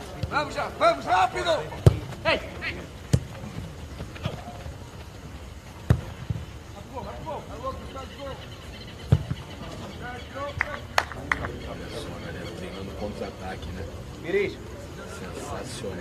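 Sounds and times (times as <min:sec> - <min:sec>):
distant players shouting: 0:00.0 - 0:04.8, 0:06.0 - 0:13.4
football kick thuds: 0:01.8 - 0:02.2, 0:03.1 - 0:03.4, 0:05.8 - 0:06.4, 0:09.1 - 0:09.4.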